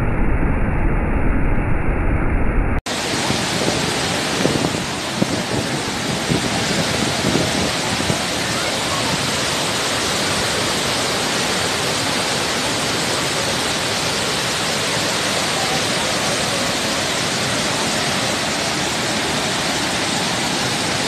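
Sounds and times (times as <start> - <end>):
waterfall rushing: 2.9 - 21.0.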